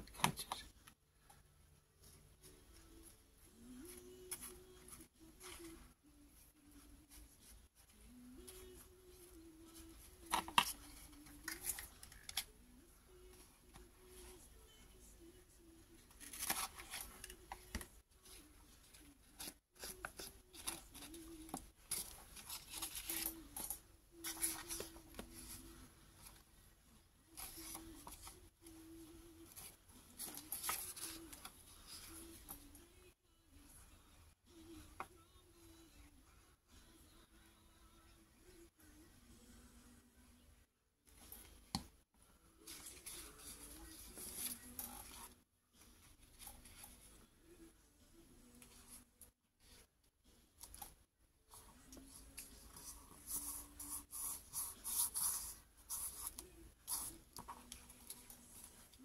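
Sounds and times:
glue brush scratching paper: 52.5s - 57.8s.

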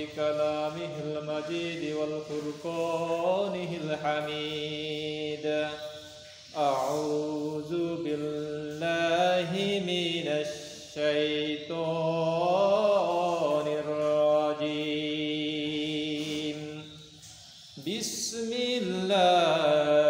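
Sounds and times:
man chanting recitation: 0.0s - 20.0s.

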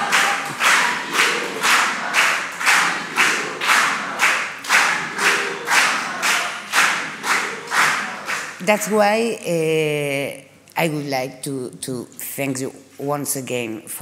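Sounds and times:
audience clapping in unison: 0.0s - 9.0s.

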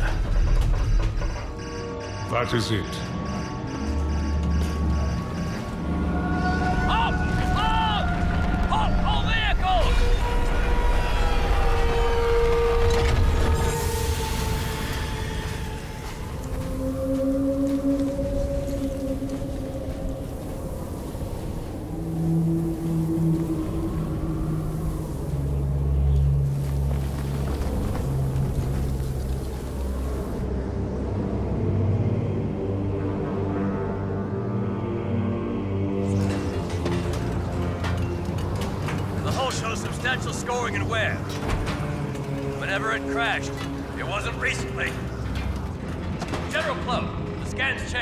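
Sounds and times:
dark slow film score: 0.0s - 48.0s
rushing wind-like noise: 6.6s - 33.4s.

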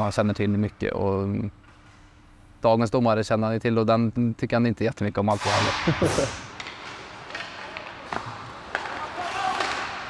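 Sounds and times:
arena noise hiss: 5.1s - 6.6s
hockey sticks clacking on puck: 6.5s - 10.0s.

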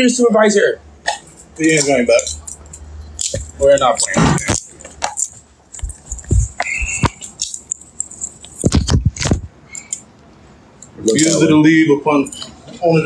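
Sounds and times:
scuffling handling noise: 3.2s - 9.5s.

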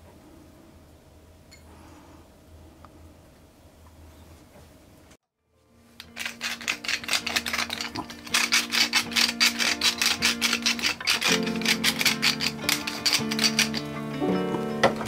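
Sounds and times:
background music plucked strings: 7.9s - 15.0s.

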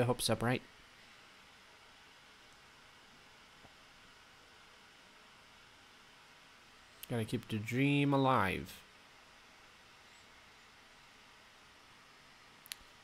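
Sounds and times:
faint room tone hiss: 0.0s - 13.0s.

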